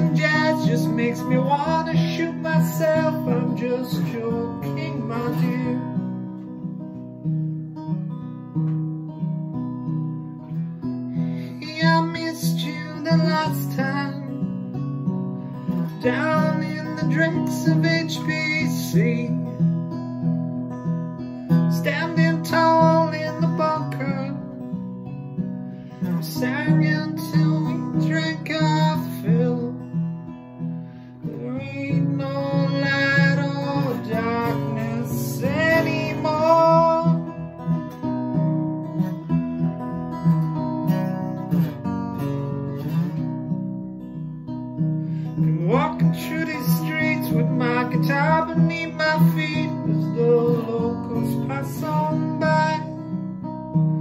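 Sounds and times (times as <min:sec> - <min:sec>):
man singing: 0:00.0 - 0:06.2, 0:11.2 - 0:14.5, 0:15.6 - 0:19.7, 0:21.5 - 0:24.6, 0:25.9 - 0:30.0, 0:31.2 - 0:37.6, 0:45.2 - 0:53.2
acoustic guitar strumming: 0:00.0 - 0:54.0.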